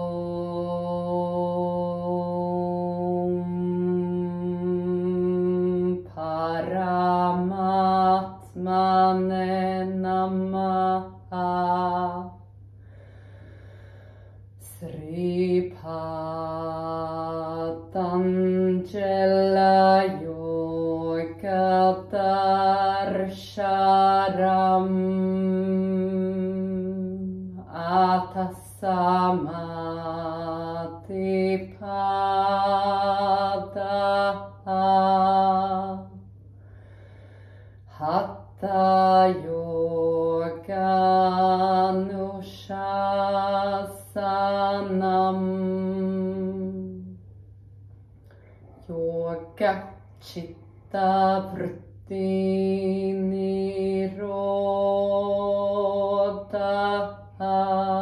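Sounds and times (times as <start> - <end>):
woman chanting: 0.0 - 13.6, 14.4 - 47.6, 48.2 - 58.0.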